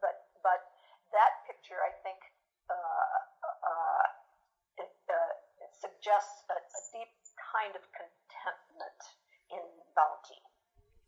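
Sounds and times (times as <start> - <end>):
woman talking: 0.0 - 0.6, 1.2 - 4.1, 4.8 - 10.4.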